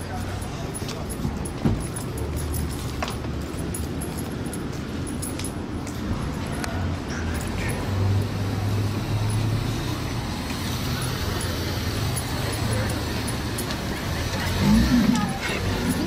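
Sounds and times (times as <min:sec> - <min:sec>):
busy street noise: 0:00.0 - 0:16.0
vehicle engine humming: 0:00.0 - 0:16.0.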